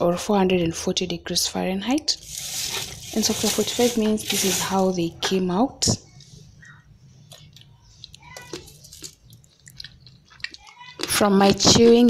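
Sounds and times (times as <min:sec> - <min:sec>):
person chewing crunchy food: 0:02.2 - 0:04.9, 0:07.3 - 0:12.0.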